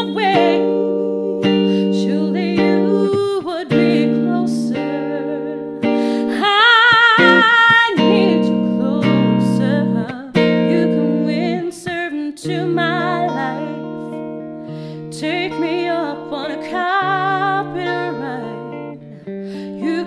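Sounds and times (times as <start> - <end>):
electric guitar chords: 0.0 - 20.0
woman singing: 0.0 - 20.0.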